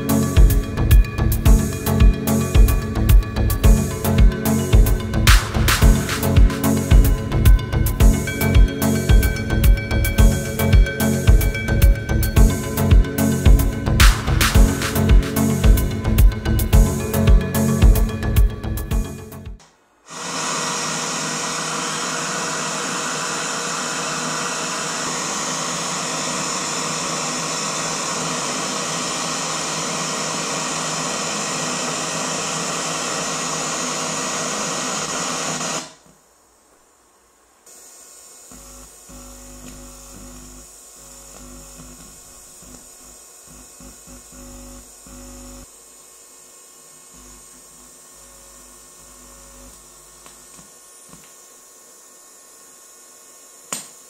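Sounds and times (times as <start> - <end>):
low hum with faint buzzing: 38.4 - 52.6.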